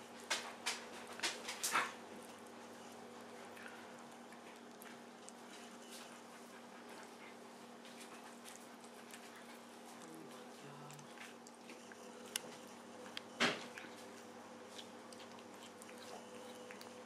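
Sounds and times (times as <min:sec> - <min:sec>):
cat chewing with wet clicks: 0:00.0 - 0:17.0.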